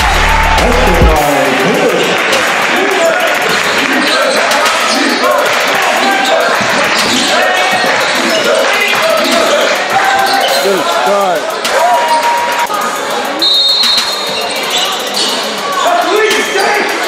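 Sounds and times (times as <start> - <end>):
voices in large hall: 0.0 - 17.0
sneakers squeaking: 3.4 - 5.3, 6.0 - 12.6, 13.4 - 17.0.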